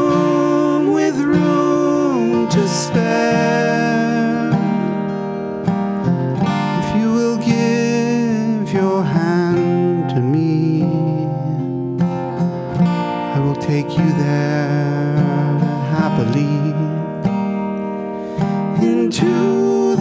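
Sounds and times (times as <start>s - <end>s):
acoustic guitar strummed and picked: 0.0s - 20.0s.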